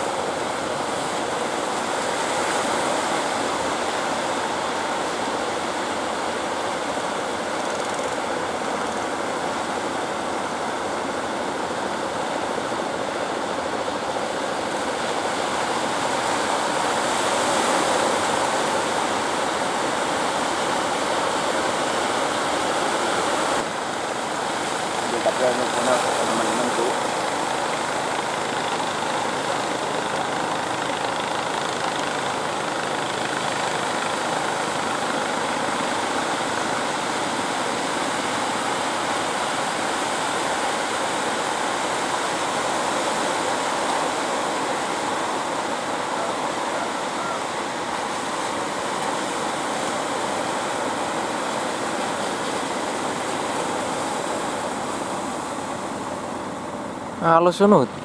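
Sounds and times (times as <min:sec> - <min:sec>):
breaking surf: 0:00.0 - 0:58.0.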